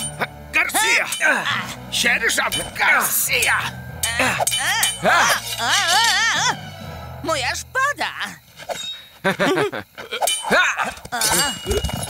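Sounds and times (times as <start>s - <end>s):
metallic clink of swords: 2.4s - 6.2s, 10.2s - 12.0s.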